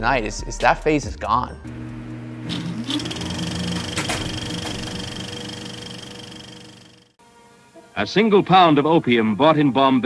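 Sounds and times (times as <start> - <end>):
rising tone: 1.7 - 7.1
machine whirring and clattering: 2.5 - 7.1.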